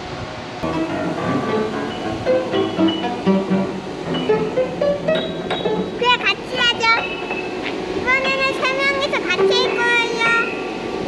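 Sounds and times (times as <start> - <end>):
piano keys pressed: 0.6 - 8.6
child's high voice: 6.0 - 10.5.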